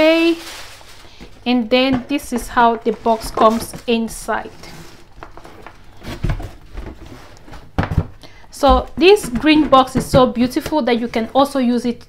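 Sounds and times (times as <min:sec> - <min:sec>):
box sliding inside cardboard box: 0:02.8 - 0:07.6.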